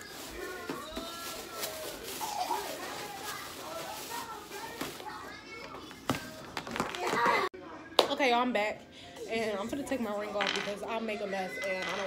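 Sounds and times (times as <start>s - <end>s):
children talking and playing: 0.0s - 8.0s, 8.6s - 12.0s.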